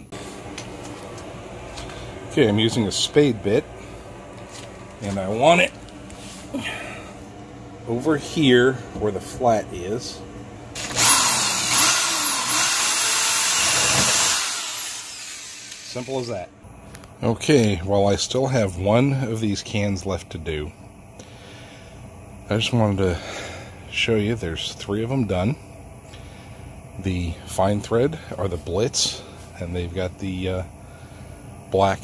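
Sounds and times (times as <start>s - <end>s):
steady mechanical hum: 0.0s - 32.0s
power drill boring plastic: 10.8s - 16.3s.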